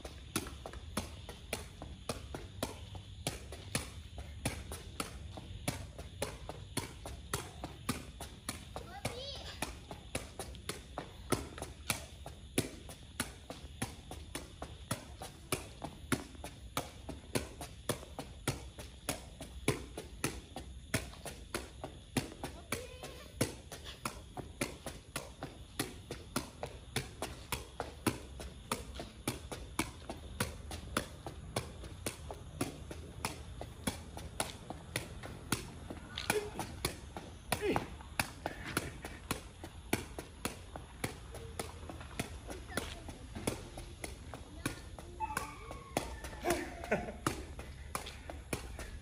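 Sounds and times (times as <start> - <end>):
ball kicked with sharp taps: 0.1 - 49.0.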